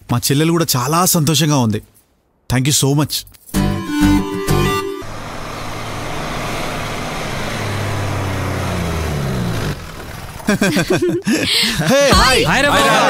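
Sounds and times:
car engine running: 3.7 - 11.2
excited voices calling: 11.6 - 13.0.

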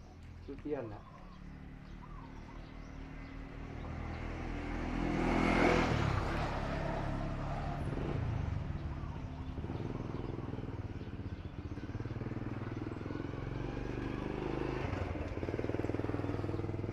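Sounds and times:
vehicle engine passing by: 0.4 - 16.9.

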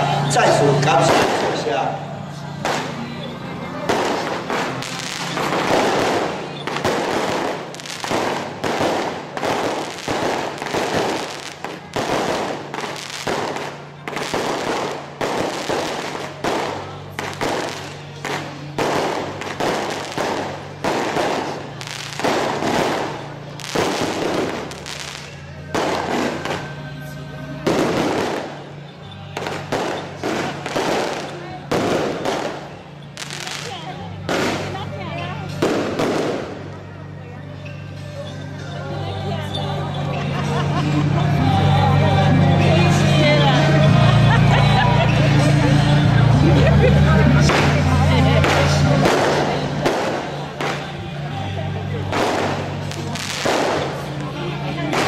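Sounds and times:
firecrackers bursting: 0.0 - 37.0, 42.9 - 55.0.

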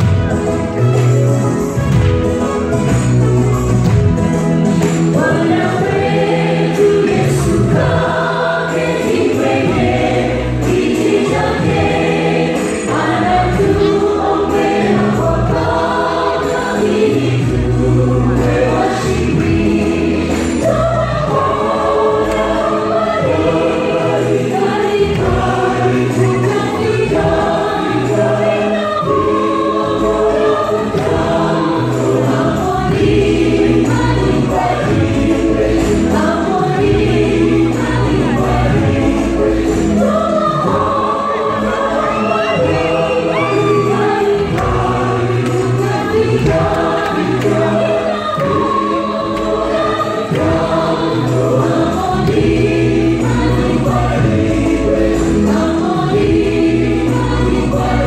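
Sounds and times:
mixed choir singing gospel song: 1.6 - 58.0.

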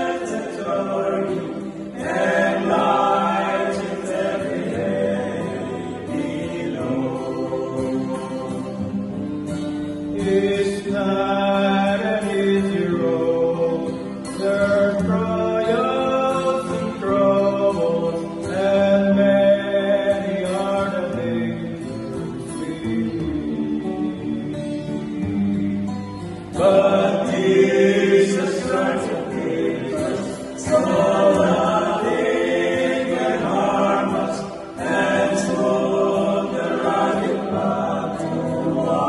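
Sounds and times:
acoustic guitar: 0.0 - 39.0
male group singing gospel: 0.0 - 39.0.

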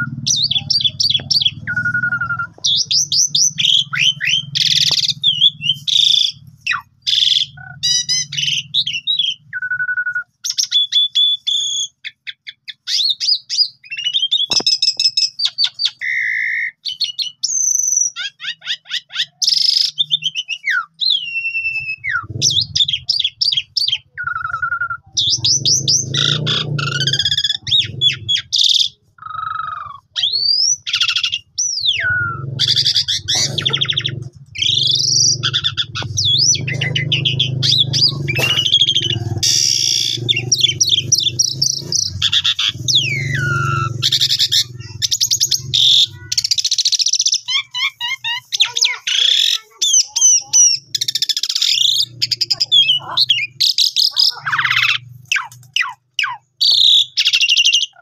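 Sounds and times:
starling singing: 0.0 - 58.0.

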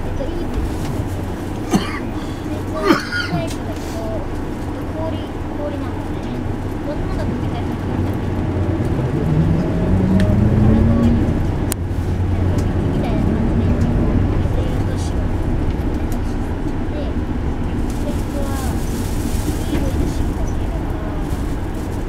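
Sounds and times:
bus engine and drivetrain hum: 0.0 - 22.0.

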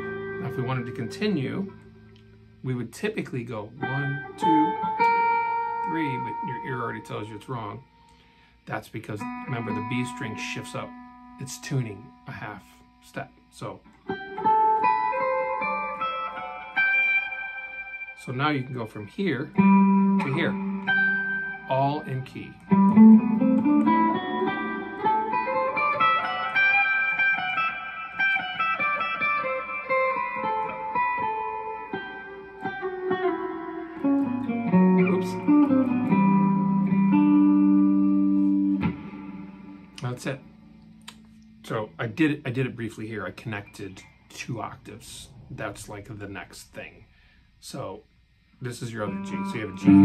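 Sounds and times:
electric guitar playing scale: 0.0 - 46.5, 48.6 - 50.0.

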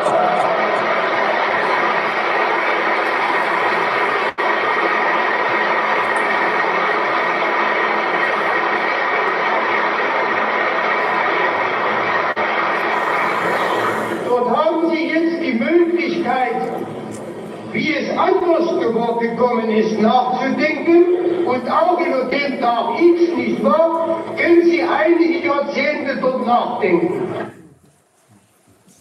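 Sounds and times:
crowd applause: 0.0 - 15.3.

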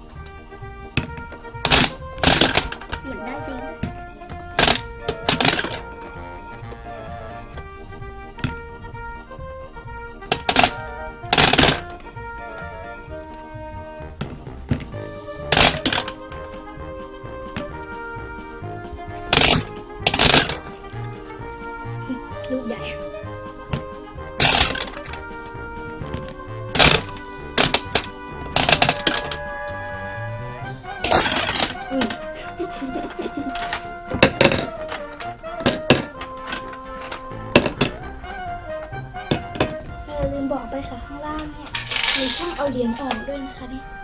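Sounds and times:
background music: 0.0 - 44.0
toy candy machine clicking: 1.7 - 3.0, 4.6 - 5.9, 10.3 - 10.8, 11.4 - 11.9, 15.5 - 16.2, 19.3 - 20.7, 24.4 - 25.3, 26.7 - 29.4, 31.0 - 32.3, 41.6 - 43.2
plastic knob clattering and clicking: 10.3 - 10.8, 26.7 - 29.4.

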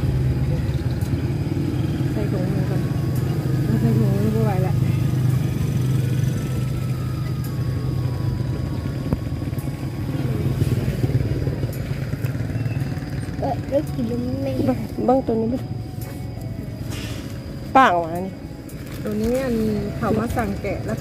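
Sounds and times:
low engine hum: 0.0 - 21.0.

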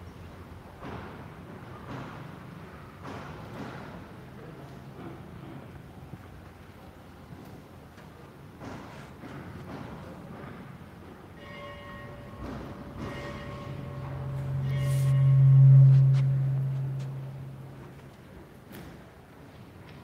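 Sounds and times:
chord of high ringing notes: 11.4 - 18.2
deep hum: 12.2 - 18.5.

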